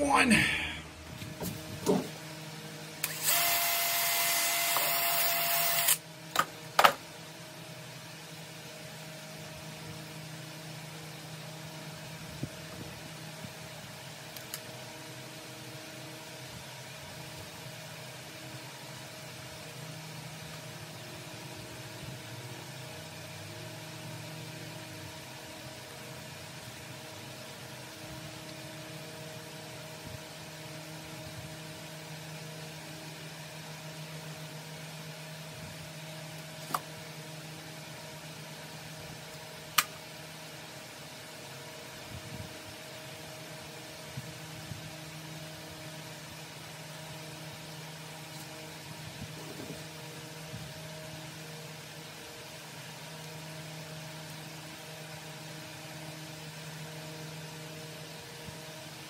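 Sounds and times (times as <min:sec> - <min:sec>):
low machine hum: 0:00.0 - 0:59.0.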